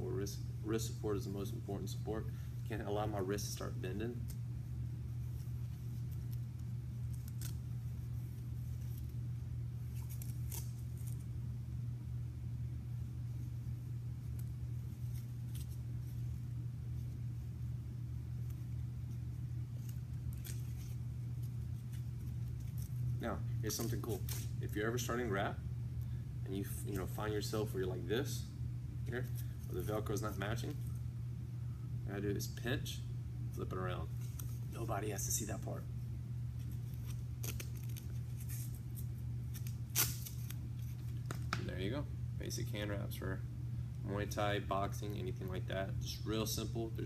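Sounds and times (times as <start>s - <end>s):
steady low hum: 0.0s - 47.0s
velcro pressed down: 6.0s - 7.6s, 9.9s - 11.2s, 36.6s - 41.5s.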